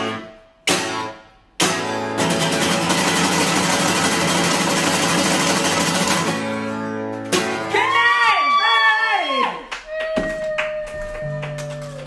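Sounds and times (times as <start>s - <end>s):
acoustic guitar strumming: 0.0s - 7.9s.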